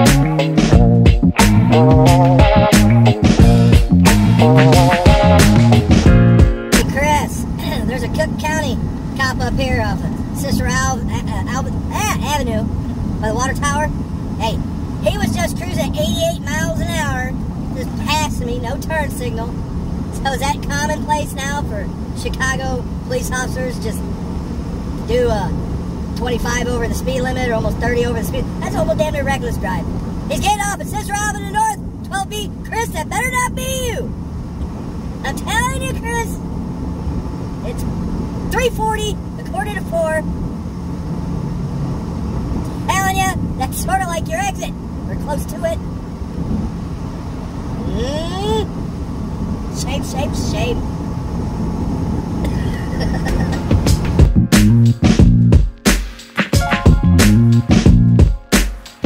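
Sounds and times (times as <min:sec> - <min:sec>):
truck engine and road drone: 0:00.0 - 0:59.0
person talking: 0:06.8 - 0:19.6, 0:26.2 - 0:34.1, 0:35.2 - 0:36.4, 0:47.8 - 0:48.7.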